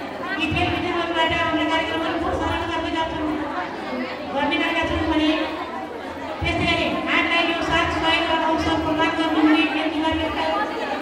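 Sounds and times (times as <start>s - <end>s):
woman talking over loudspeaker: 0.0s - 11.0s.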